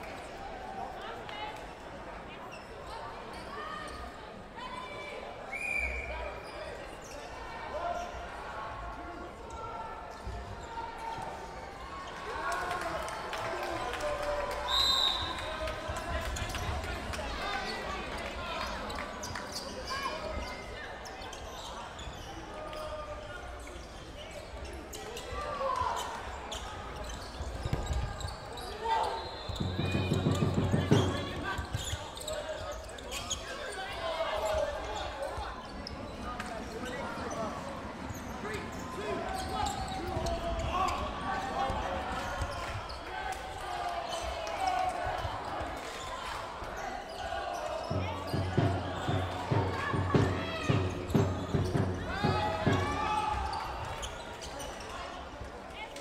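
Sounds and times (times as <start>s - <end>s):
players calling out: 27.8s - 34.0s, 47.1s - 54.8s
balls bouncing on wooden floor: 29.6s - 32.0s.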